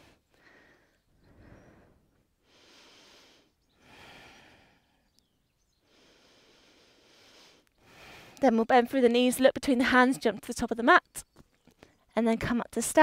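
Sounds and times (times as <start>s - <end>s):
slow breathing: 0.0s - 8.4s.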